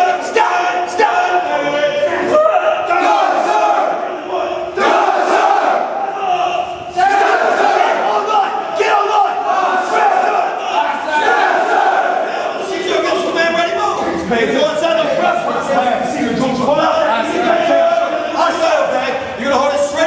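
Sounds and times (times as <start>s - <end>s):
men shouting commands: 0.0s - 20.0s.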